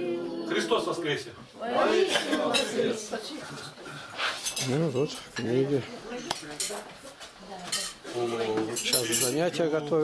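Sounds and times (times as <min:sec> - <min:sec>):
dishes and cutlery clattering: 0:04.4 - 0:05.6, 0:06.3 - 0:06.9, 0:07.6 - 0:10.0.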